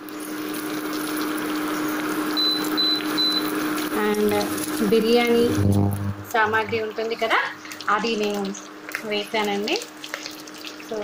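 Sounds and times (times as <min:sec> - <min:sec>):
spices sizzling in hot oil: 0:00.0 - 0:05.5, 0:06.4 - 0:11.0
steady low hum: 0:04.0 - 0:07.1
short high beeps: 0:05.5 - 0:06.7.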